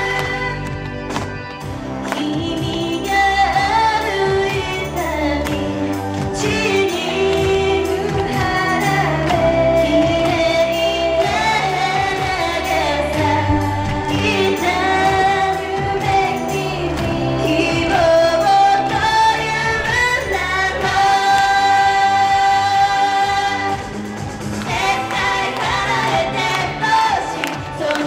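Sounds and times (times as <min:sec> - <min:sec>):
women singing pop song: 0:00.0 - 0:01.1, 0:01.9 - 0:28.0
backing music with beat: 0:00.0 - 0:28.0.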